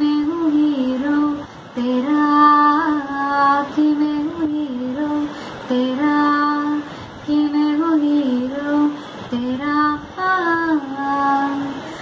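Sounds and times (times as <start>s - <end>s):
young woman singing unaccompanied: 0.0s - 12.0s.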